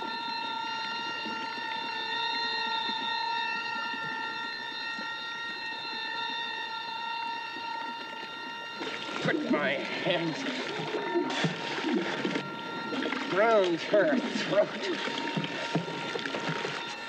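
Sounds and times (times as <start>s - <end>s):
held drone tone: 0.0s - 17.0s.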